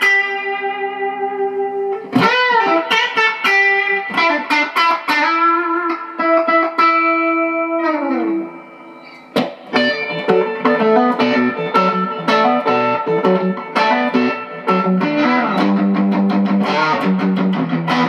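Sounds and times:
electric guitar picked notes: 0.0s - 18.0s.

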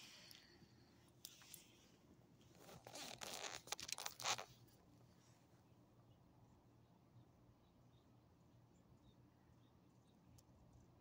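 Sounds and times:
rustling and scraping: 1.2s - 5.5s.

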